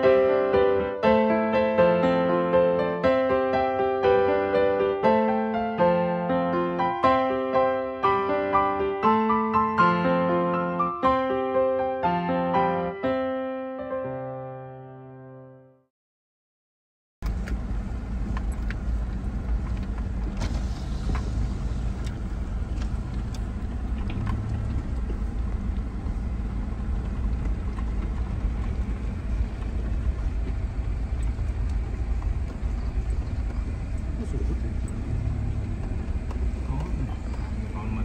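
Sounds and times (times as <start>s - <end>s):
vehicle low rumble: 17.2s - 38.0s.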